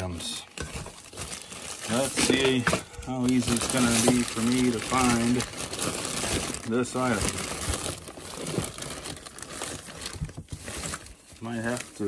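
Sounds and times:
plastic bags rustling: 0.0s - 12.0s.

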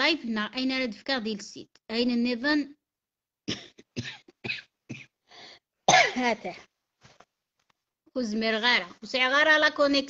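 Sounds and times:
woman coughing: 3.5s - 5.2s, 5.9s - 6.5s.

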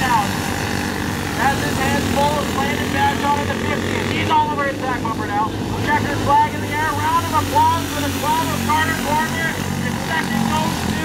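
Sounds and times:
race announcer's voice: 0.0s - 0.6s, 1.3s - 11.0s
kart engines racing: 0.0s - 11.0s.

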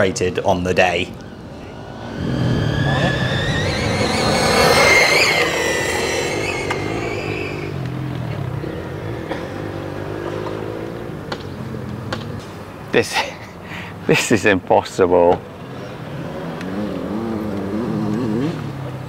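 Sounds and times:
electric motor whine of toy car: 2.0s - 8.0s.

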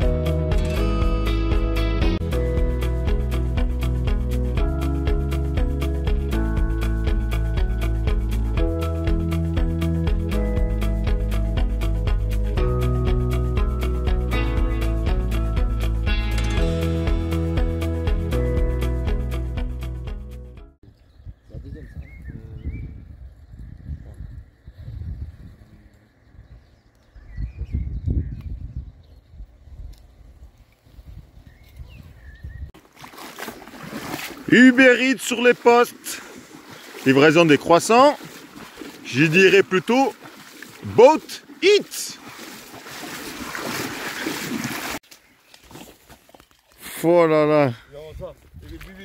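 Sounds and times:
wind buffeting microphone: 21.0s - 32.8s, 48.0s - 49.0s
rushing water from moving boat: 32.8s - 45.0s.

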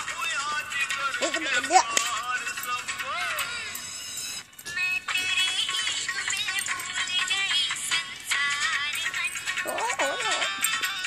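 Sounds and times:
song from phone speaker: 0.0s - 11.0s.

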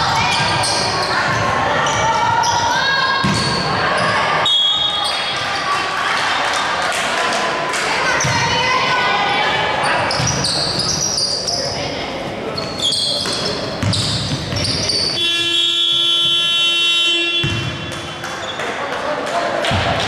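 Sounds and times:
sneakers squeaking on court: 0.0s - 4.2s, 9.8s - 15.6s
basketball bouncing: 3.2s - 3.6s, 10.1s - 10.5s, 13.2s - 14.9s, 17.4s - 18.2s
buzzer horn: 15.2s - 17.7s.

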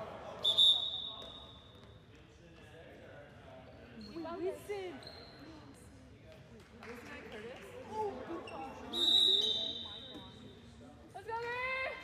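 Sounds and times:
referee whistle: 0.4s - 1.6s, 8.9s - 10.2s.

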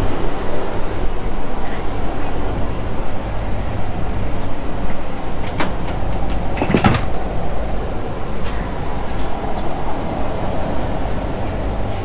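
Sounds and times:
train interior rumble: 0.0s - 12.0s.

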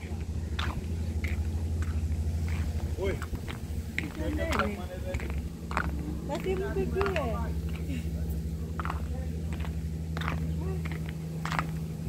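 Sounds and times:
footsteps on brick paving: 0.0s - 12.0s
steady low rumble: 0.0s - 12.0s.

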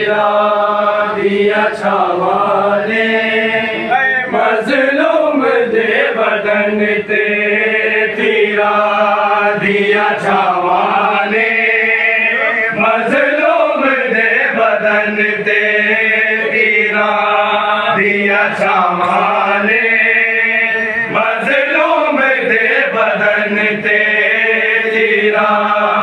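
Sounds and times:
men chanting a lament: 0.0s - 26.0s.

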